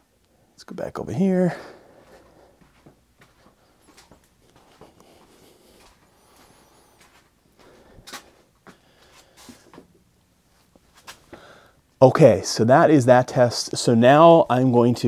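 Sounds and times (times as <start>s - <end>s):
footsteps and clothing rustles: 1.5s - 11.5s.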